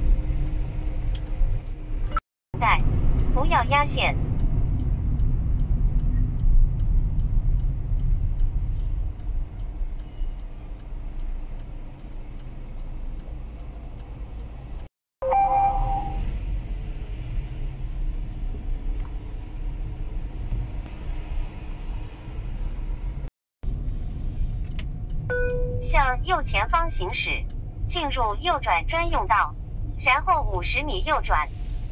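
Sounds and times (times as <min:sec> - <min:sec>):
road and engine rumble in car: 0:00.0 - 0:31.9
brief electronic tone: 0:15.2 - 0:16.2, 0:25.3 - 0:25.9.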